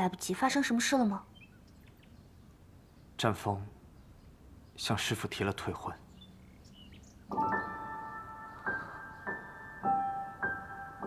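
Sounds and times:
soft sustained piano notes: 0:06.2 - 0:11.0.

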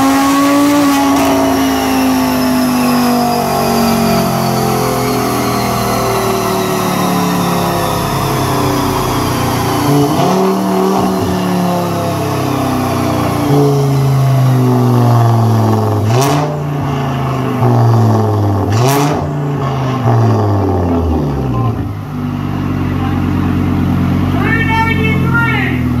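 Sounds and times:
car engine under load: 0:00.0 - 0:26.0
person speaking: 0:24.4 - 0:25.9.

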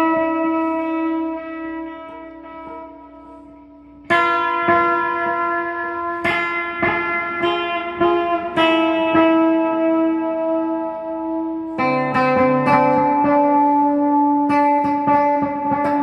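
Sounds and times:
guitar chords strummed: 0:00.0 - 0:16.0.

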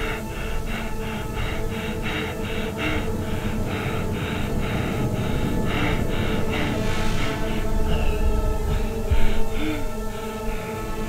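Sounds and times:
fast hard breathing in helmet: 0:00.0 - 0:11.0
low music drone: 0:00.0 - 0:11.0.

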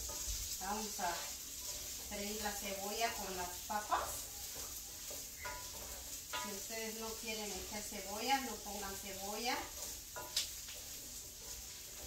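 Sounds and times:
potatoes sizzling in oil: 0:00.0 - 0:12.0
spatula stirring in pan: 0:00.0 - 0:12.0.

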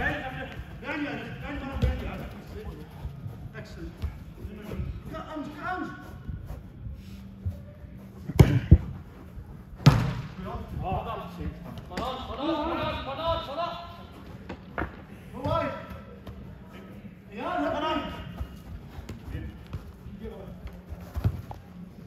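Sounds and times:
players' voices in a hall: 0:00.0 - 0:22.0
football kick thuds: 0:08.3 - 0:08.9, 0:09.8 - 0:10.4.

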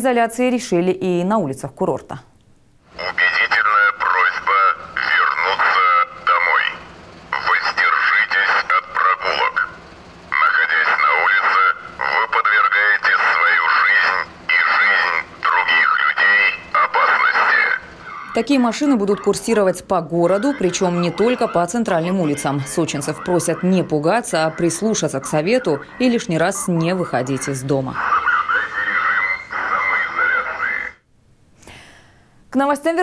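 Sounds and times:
distorted loudspeaker announcement: 0:02.9 - 0:31.0.

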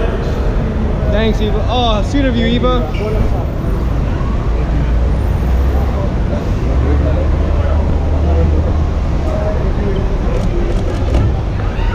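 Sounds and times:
indistinct crowd voices: 0:00.0 - 0:11.9
low rumble of running vehicles: 0:00.0 - 0:11.9.

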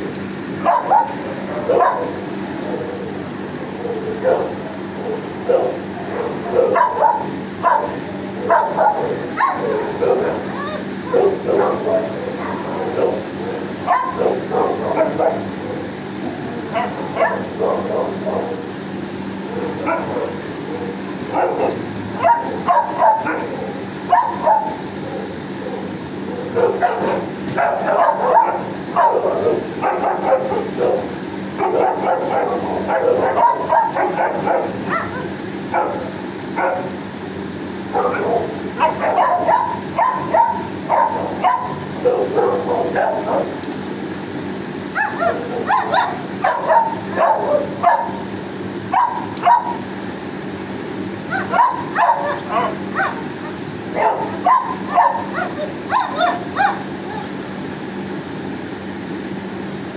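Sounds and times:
steady low hum: 0:00.0 - 0:59.9
dogs barking and yipping: 0:00.5 - 0:37.1, 0:37.8 - 0:43.6, 0:44.7 - 0:57.5.

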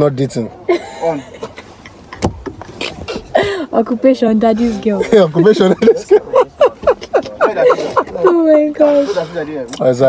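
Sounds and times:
laughter: 0:00.7 - 0:02.4, 0:05.4 - 0:08.6
car interior rumble: 0:01.3 - 0:09.0.

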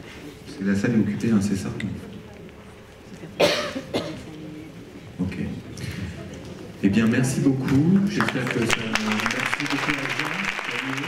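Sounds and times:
person coughing: 0:03.4 - 0:04.3.

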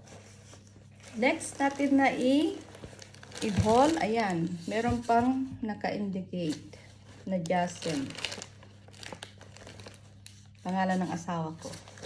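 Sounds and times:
fabric gift bag crinkling: 0:00.2 - 0:04.8, 0:07.0 - 0:12.0.

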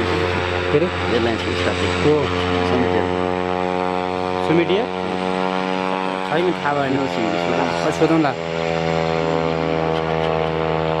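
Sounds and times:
propeller plane engine running: 0:00.0 - 0:11.0.

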